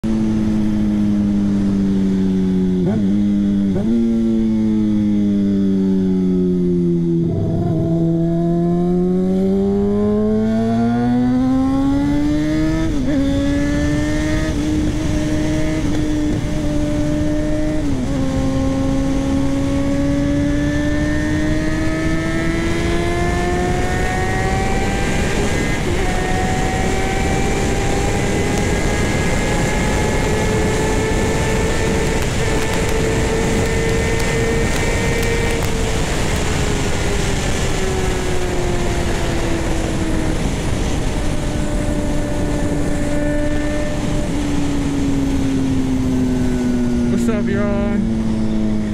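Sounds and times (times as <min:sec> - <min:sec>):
motorcycle engine accelerating: 0:00.0 - 0:48.9
wind rush: 0:06.9 - 0:48.9.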